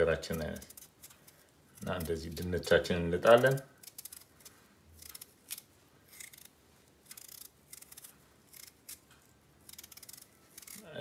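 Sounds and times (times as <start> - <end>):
knife peeling potato: 0.0 - 11.0.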